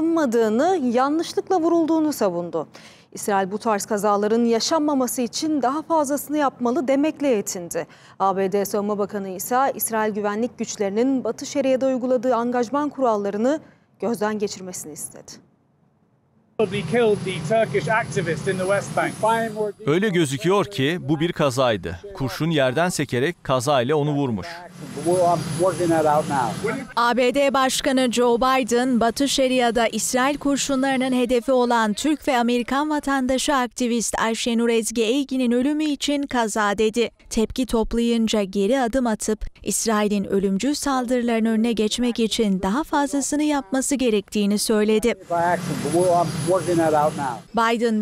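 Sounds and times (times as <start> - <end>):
helicopter running: 16.6 - 19.6, 24.7 - 27.0, 45.2 - 47.4
engine-like rumble and hiss: 16.6 - 19.7, 24.6 - 27.0, 45.2 - 47.5
man talking: 16.6 - 27.0, 45.1 - 47.5
person speaking: 18.6 - 27.4.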